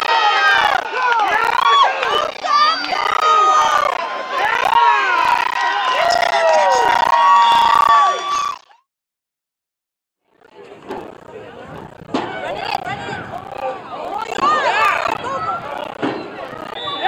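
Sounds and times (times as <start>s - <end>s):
spectators cheering and yelling: 0.0s - 8.7s, 10.7s - 17.0s
long drawn-out shout: 0.0s - 8.8s, 12.4s - 15.9s.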